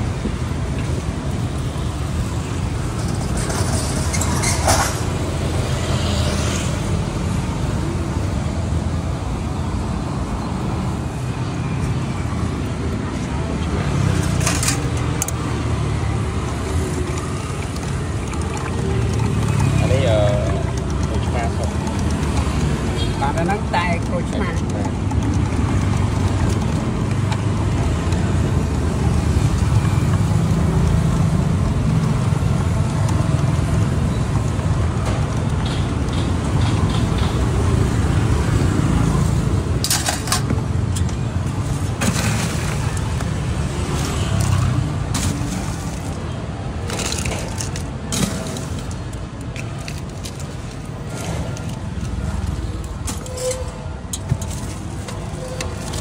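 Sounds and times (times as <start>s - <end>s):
low rumble of street traffic: 0.0s - 56.0s.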